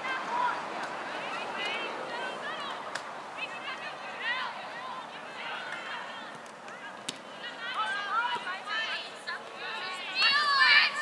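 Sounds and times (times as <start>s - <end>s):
distant people calling and shouting: 0.0s - 11.0s.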